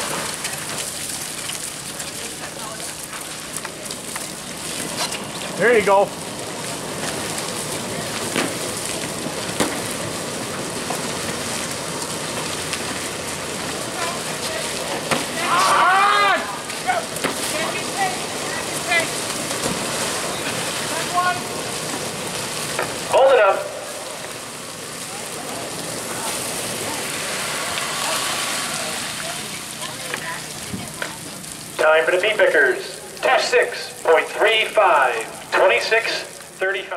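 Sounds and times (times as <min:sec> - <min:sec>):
fire hose spraying water: 0:00.0 - 0:36.9
people shouting: 0:15.2 - 0:19.2.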